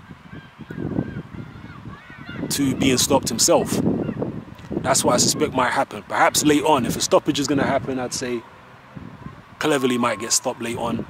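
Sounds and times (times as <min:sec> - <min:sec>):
birds calling: 0:00.0 - 0:06.8.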